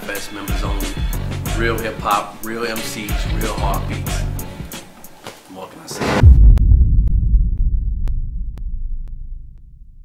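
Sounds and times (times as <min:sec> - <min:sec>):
deep low rumble: 0:06.0 - 0:10.0.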